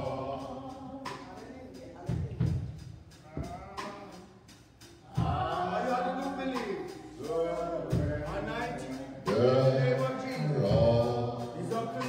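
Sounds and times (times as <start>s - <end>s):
church band music: 0.0s - 12.0s
light cymbal strokes: 2.5s - 12.0s.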